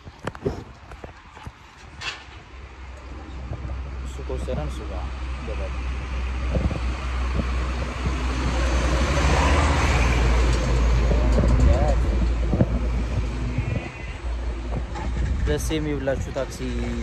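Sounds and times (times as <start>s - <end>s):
low traffic rumble: 0.0s - 17.0s
vehicle passing close by: 5.2s - 14.6s.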